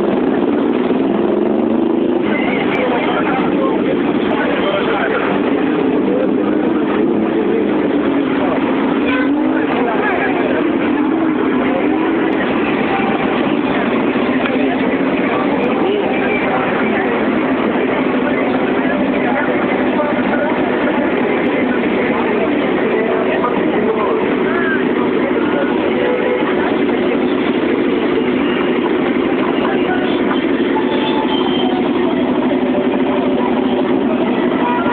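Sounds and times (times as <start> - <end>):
crowd chattering: 0.0 - 34.9
motorcycle engines running: 0.0 - 34.9
voices in background: 0.0 - 34.9.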